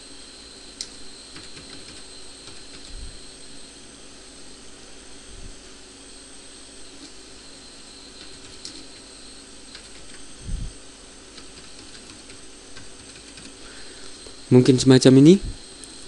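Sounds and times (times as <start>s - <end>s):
steady background hiss: 0.0s - 16.0s
computer keyboard keystrokes: 0.8s - 2.9s, 8.2s - 8.9s, 9.7s - 10.2s, 11.4s - 13.6s.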